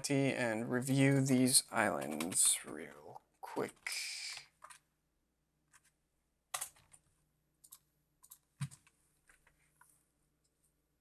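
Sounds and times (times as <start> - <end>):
keyboard typing: 1.0 - 3.0, 3.6 - 4.9, 5.7 - 9.6.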